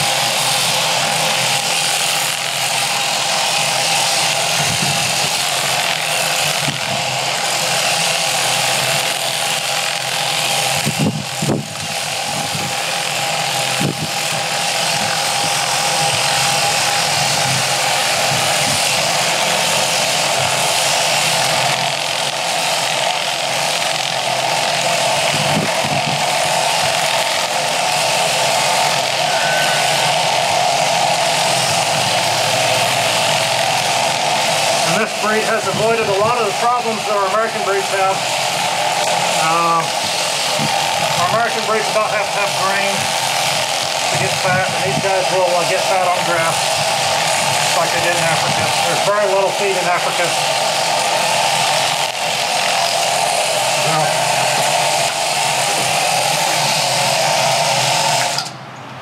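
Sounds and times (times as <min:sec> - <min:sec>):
electric sheep shears running: 0:00.0 - 0:59.0.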